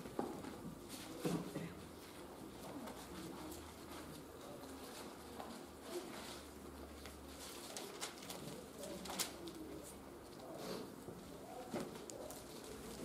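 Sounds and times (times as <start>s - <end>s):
faint low murmurs: 0.0s - 13.0s.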